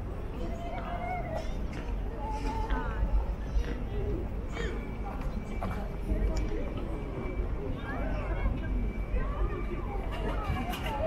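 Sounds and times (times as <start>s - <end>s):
busy street hum: 0.0s - 11.0s.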